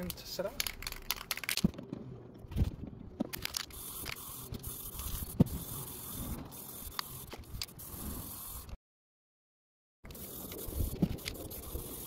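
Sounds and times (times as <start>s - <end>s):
aerosol spray can hissing: 3.7s - 8.8s, 10.1s - 12.0s.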